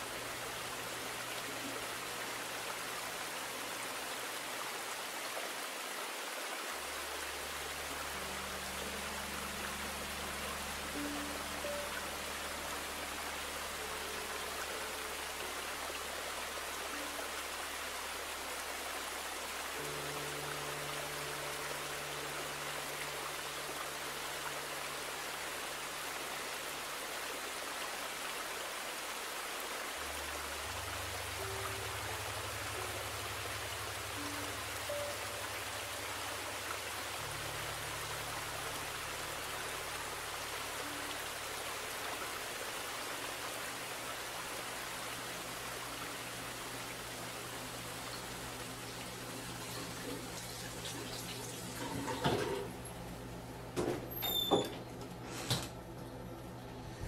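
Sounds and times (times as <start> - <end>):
water rushing in a creek: 0.0 - 53.6
low musical drone: 7.0 - 26.9, 29.9 - 50.7.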